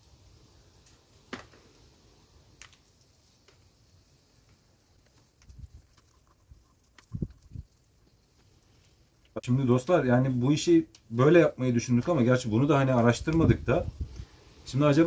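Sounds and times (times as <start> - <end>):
dried herbs crackling and rustling: 0.0 - 15.0
light ticks: 10.9 - 11.1.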